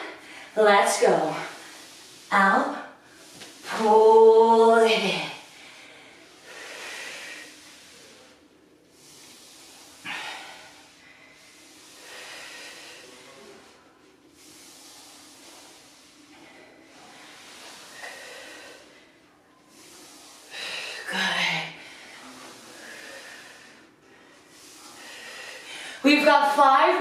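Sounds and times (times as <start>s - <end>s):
woman breathing heavily: 0.0s - 4.2s, 5.1s - 26.1s
floor sliders sliding: 0.0s - 5.5s, 6.2s - 21.6s.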